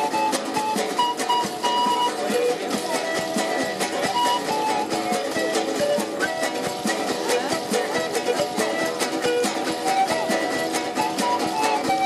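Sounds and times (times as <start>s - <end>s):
panpipe melody: 0.0s - 12.0s
strummed guitar and charango: 0.0s - 12.0s.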